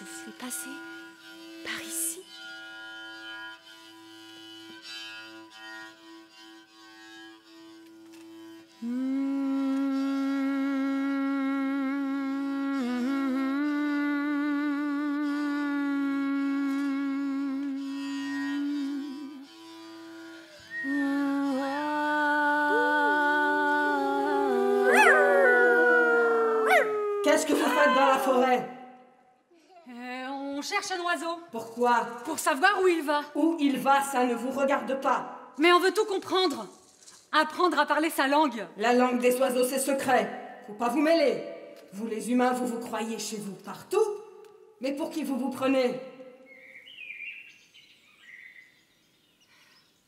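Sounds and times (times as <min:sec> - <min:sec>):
people howling like wolves: 0:22.7 - 0:28.3
rising and falling yelp: 0:24.6 - 0:28.3
soft whistled calls: 0:46.4 - 0:49.8.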